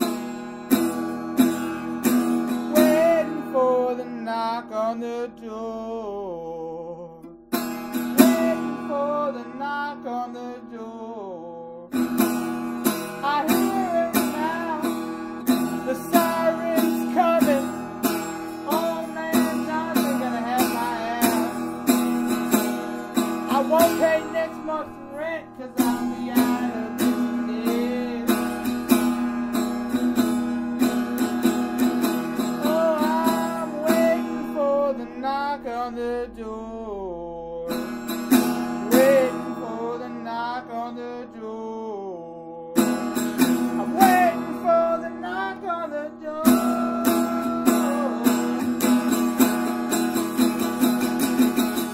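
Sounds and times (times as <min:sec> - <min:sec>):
wavering wordless melody: 0:00.0 - 0:50.1
acoustic guitar strumming: 0:00.0 - 0:51.9.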